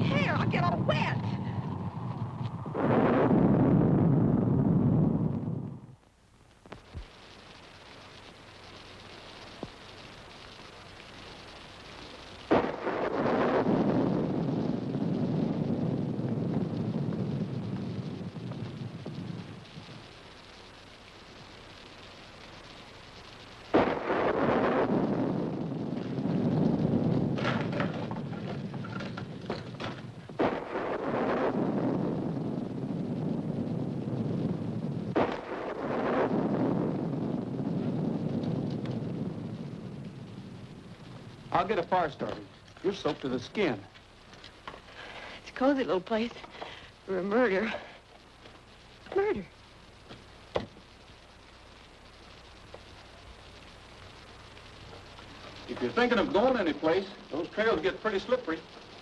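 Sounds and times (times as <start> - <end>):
thunder cracks and rumble: 0.0 - 5.9, 12.5 - 20.1, 23.7 - 42.5
heavy rain hiss: 0.0 - 59.0.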